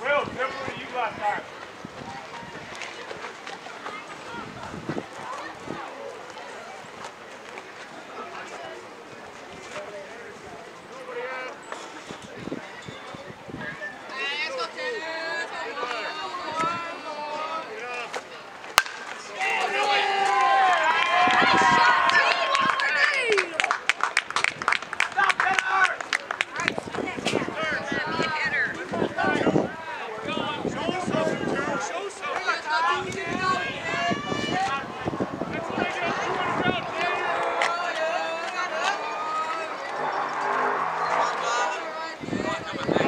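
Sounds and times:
background chatter of voices: 0.0s - 43.0s
bat cracking baseball: 18.8s - 19.3s
spectators shouting and cheering: 18.8s - 23.6s, 32.9s - 43.0s.

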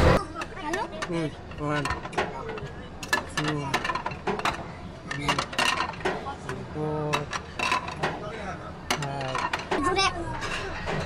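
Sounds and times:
plate clinking: 0.6s - 8.2s.

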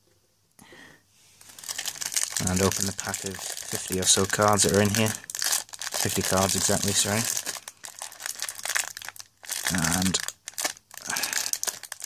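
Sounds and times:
cellophane crinkling and tearing: 1.4s - 12.0s.

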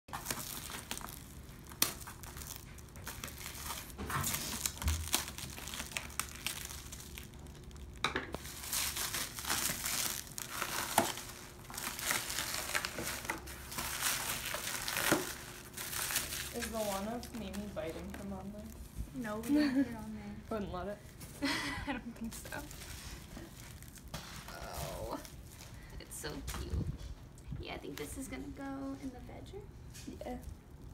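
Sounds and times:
plastic wrap snapping: 0.1s - 20.6s, 22.2s - 26.8s
plastic wrap crinkling: 0.1s - 27.4s, 29.9s - 30.9s.

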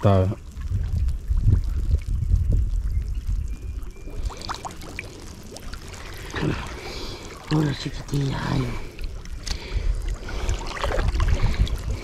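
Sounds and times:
small water splashes: 0.0s - 12.0s
water sloshing and lapping: 3.8s - 12.0s.

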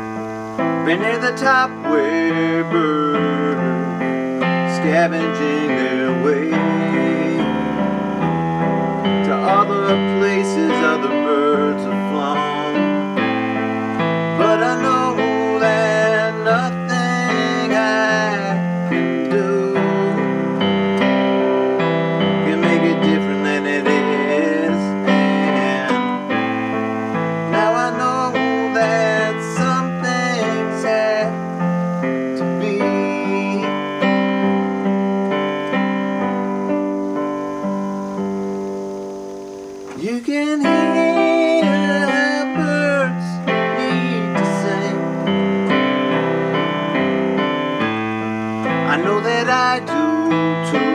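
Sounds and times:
piano playing chords and melody: 0.0s - 50.9s.

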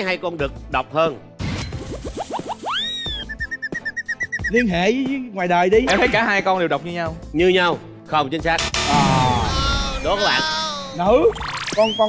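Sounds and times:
rising whistle-like tone: 2.6s - 4.2s, 11.4s - 12.0s.

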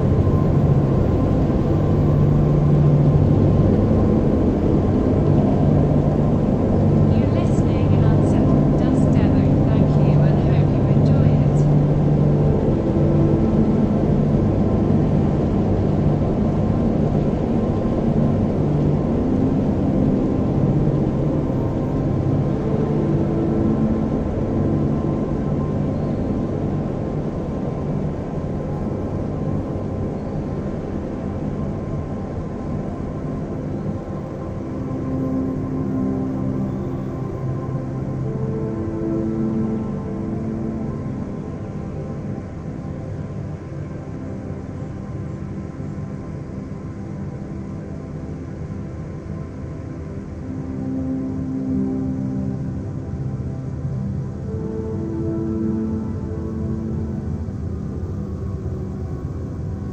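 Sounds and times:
dark ambient drone: 0.0s - 59.9s.

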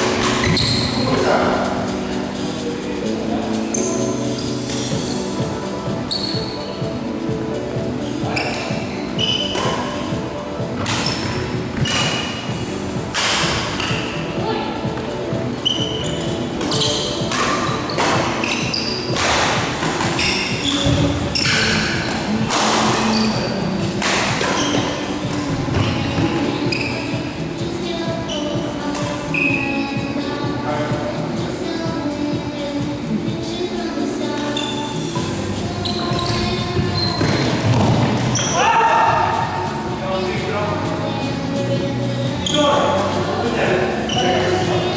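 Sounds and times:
shoes squeaking on court floor: 0.0s - 1.3s, 3.5s - 31.0s, 34.2s - 39.8s, 42.2s - 44.9s
music: 0.0s - 44.9s
racket striking shuttlecock: 9.4s - 9.9s, 10.8s - 12.4s, 13.1s - 14.0s, 16.6s - 23.1s, 24.0s - 25.5s.

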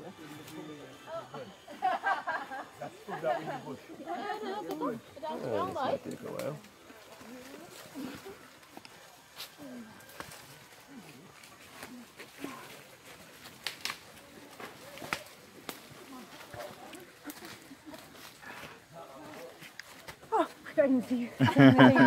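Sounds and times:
rustling through undergrowth: 3.3s - 21.8s
sharp clicks and crackles: 13.4s - 15.9s.

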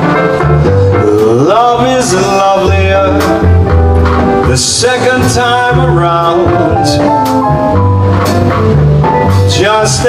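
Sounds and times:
jazz band playing a ballad: 0.0s - 10.0s.

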